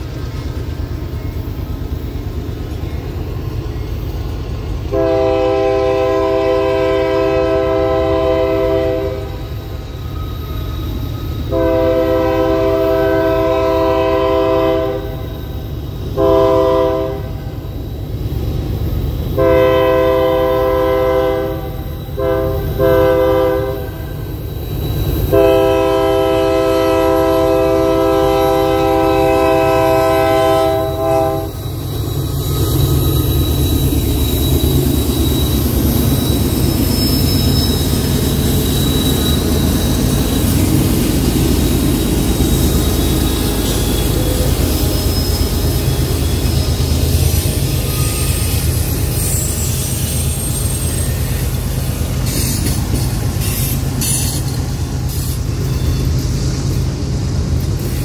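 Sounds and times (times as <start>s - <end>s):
locomotive air horn blasts: 4.9s - 9.4s, 11.5s - 15.3s, 16.2s - 17.4s, 19.4s - 24.0s, 25.3s - 31.6s.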